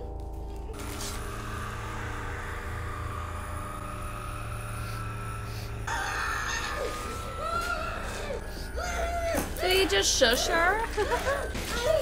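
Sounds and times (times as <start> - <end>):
low droning score: 0.0 - 12.0.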